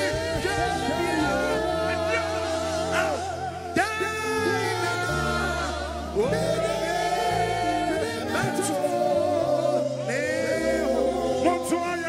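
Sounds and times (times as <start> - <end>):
men singing gospel: 0.0 - 12.0.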